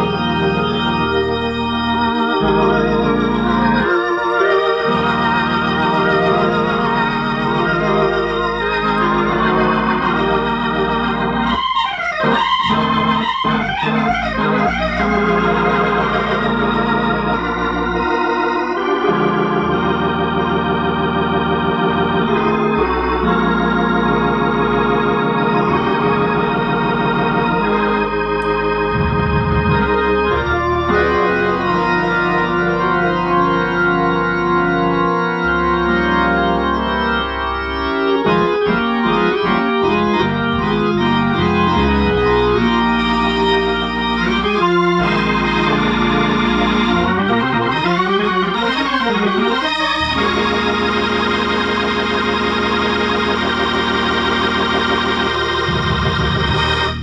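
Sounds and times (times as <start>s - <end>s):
organ chords through rotating speakers: 0.0s - 57.0s
stepping bass line: 25.5s - 34.3s, 38.3s - 57.0s.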